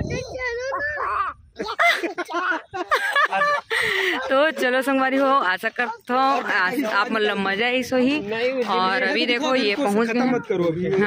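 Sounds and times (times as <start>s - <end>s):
person laughing: 1.6s - 5.4s.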